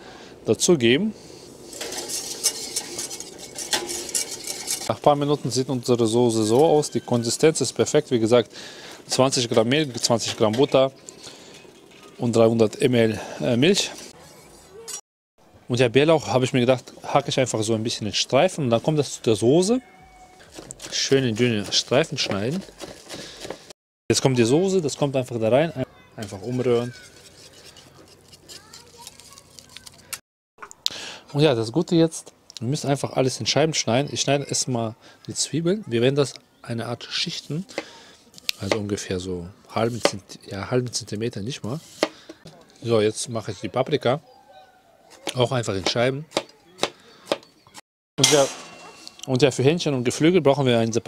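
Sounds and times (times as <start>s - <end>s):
whisk scraping a metal saucepan: 1.6s - 7.6s, 20.4s - 23.7s, 26.3s - 30.0s.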